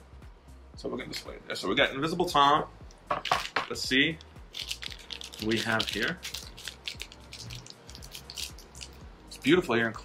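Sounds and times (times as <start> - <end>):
foil wrapper tearing and crinkling: 4.5 - 9.0.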